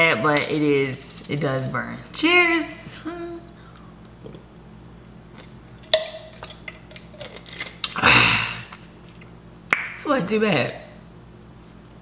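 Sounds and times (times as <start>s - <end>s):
harsh burst of breath: 8.0s - 8.7s.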